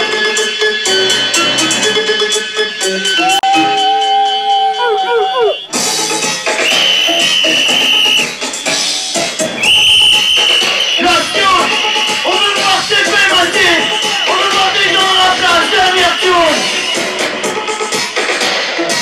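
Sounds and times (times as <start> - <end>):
dub music over sound system: 0.0 - 19.0
high held tone: 3.2 - 8.4, 9.6 - 17.2.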